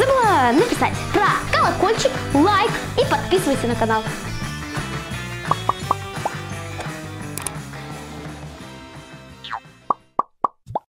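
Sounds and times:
background music: 0:00.0 - 0:10.2
rising bloop pops: 0:05.5 - 0:06.4.

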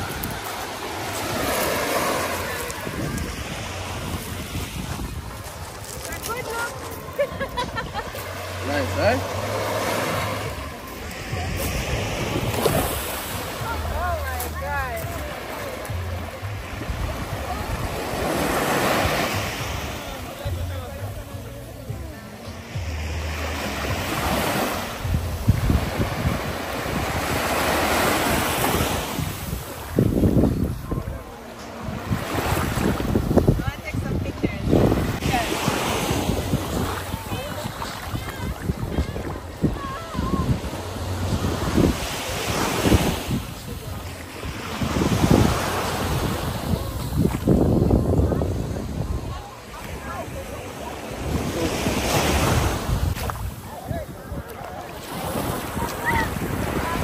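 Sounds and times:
wind buffeting microphone: 0:00.0 - 0:08.5, 0:10.2 - 0:15.3, 0:24.2 - 0:57.0
small waves washing on sand: 0:00.0 - 0:57.0.

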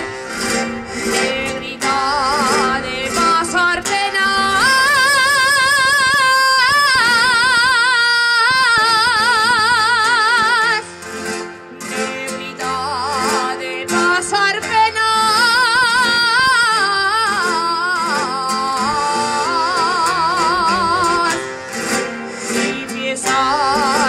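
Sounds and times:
plucked guitar accompaniment: 0:00.0 - 0:24.0
woman singing with vibrato: 0:00.0 - 0:24.0.

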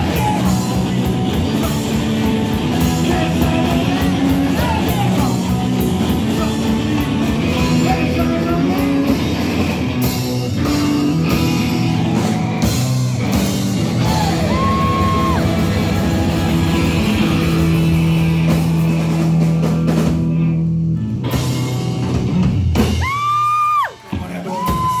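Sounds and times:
live rock band playing: 0:00.0 - 0:25.0
person yelling: 0:14.0 - 0:15.6.

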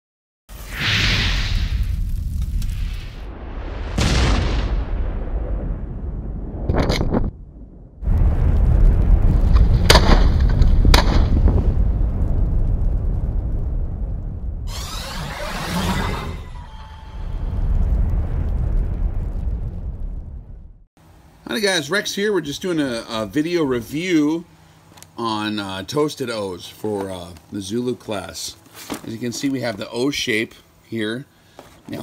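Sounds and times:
deep boom: 0:00.6 - 0:20.9
heavy low rumble: 0:01.5 - 0:20.9
sharp bangs: 0:09.5 - 0:11.4, 0:14.7 - 0:18.0.

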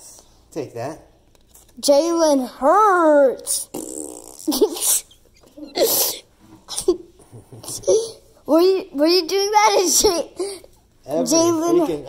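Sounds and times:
person sneezing: 0:05.7 - 0:07.9.

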